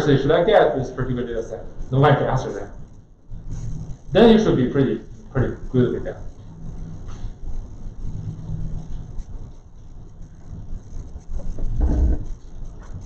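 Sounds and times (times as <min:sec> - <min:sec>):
low rumbling room noise: 0:00.0 - 0:13.0
heavy low thump: 0:11.4 - 0:12.4.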